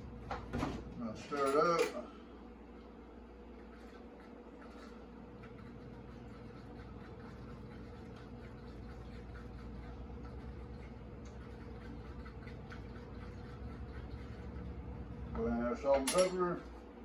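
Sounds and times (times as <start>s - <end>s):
steady low hum: 0.0s - 17.0s
fork whisking eggs: 3.4s - 15.3s.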